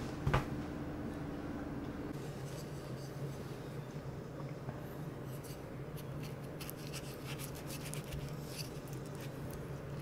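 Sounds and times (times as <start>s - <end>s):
low room hum: 0.0s - 10.0s
rustling and handling noise: 5.3s - 10.0s.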